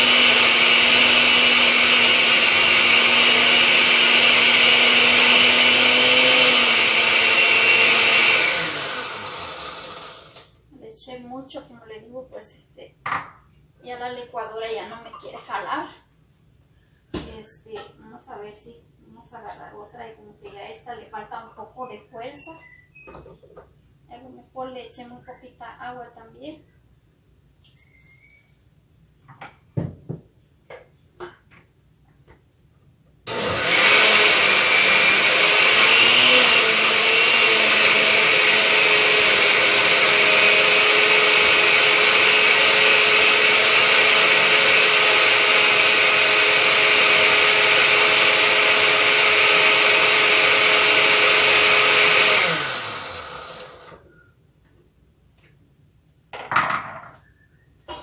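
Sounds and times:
blender running: 0.0s - 10.5s, 33.3s - 54.1s.

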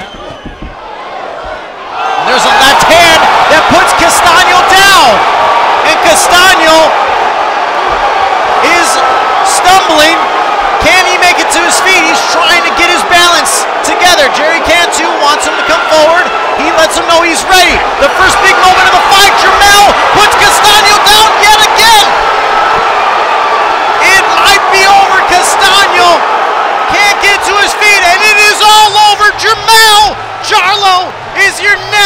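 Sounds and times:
arena crowd roaring: 0.8s - 32.0s.

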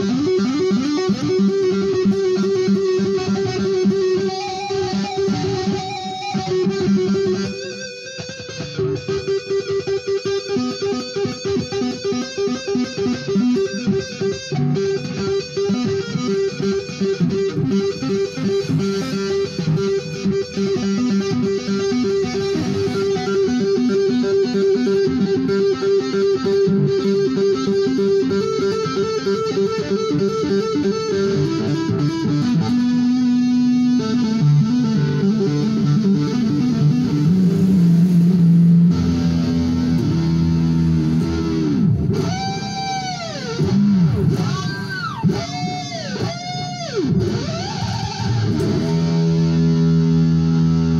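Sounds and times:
electric guitar through amplifier: 0.0s - 50.9s.

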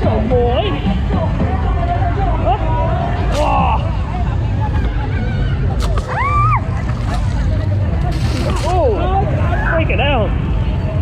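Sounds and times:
traffic rumble: 0.0s - 11.0s
people shouting: 5.2s - 6.9s.

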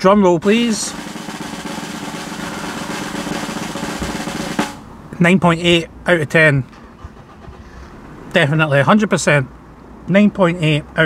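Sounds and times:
snare drum roll: 0.4s - 4.9s.

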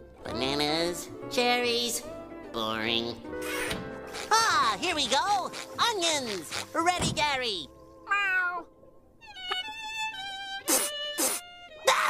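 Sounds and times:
cartoon cat meow: 8.1s - 8.7s.

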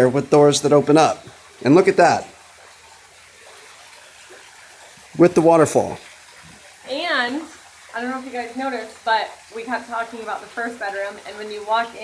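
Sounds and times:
small waterfall running: 0.0s - 12.0s.

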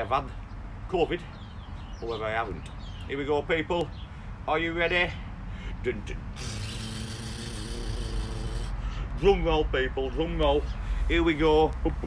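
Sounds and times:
man imitating drum roll: 6.4s - 8.8s.

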